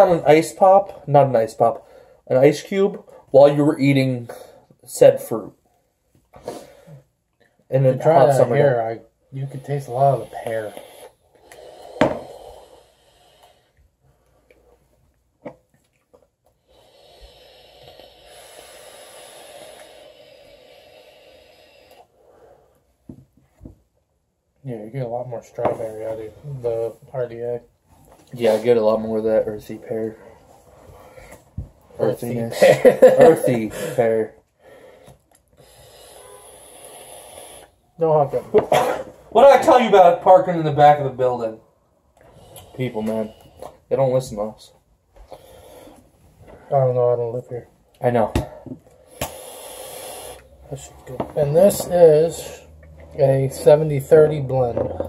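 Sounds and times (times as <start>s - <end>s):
vape airflow hiss: 9.5s - 13.8s, 16.6s - 22.4s, 35.5s - 37.8s, 45.3s - 46.0s, 49.0s - 50.6s
vape click: 49.1s - 50.4s.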